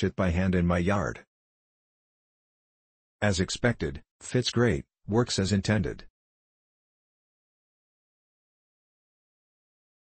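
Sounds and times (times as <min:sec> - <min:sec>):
synthesized voice: 0:03.2 - 0:06.1.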